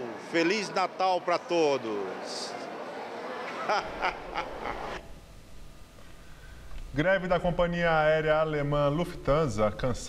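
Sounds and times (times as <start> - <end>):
man laughing: 3.6 - 5.0.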